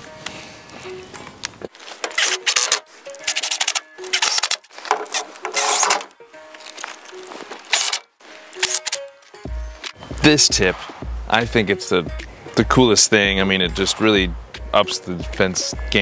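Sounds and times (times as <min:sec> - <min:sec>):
background music: 0:00.0 - 0:16.0
cordless drill driving screws: 0:07.7 - 0:08.0.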